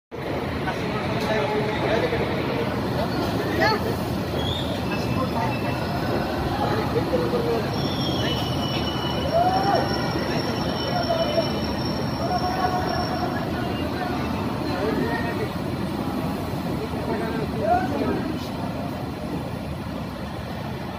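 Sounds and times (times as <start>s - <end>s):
train wheels rumbling on track: 0.1s - 20.9s.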